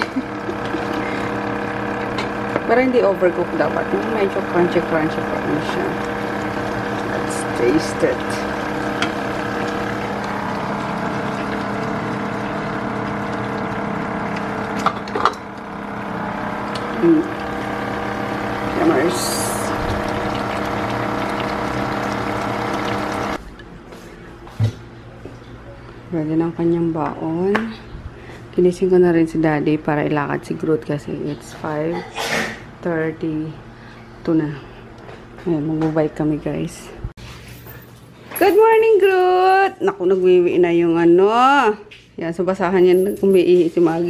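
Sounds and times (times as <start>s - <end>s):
kitchen fan humming: 0.0s - 44.0s
pan simmering ticking: 0.1s - 23.4s.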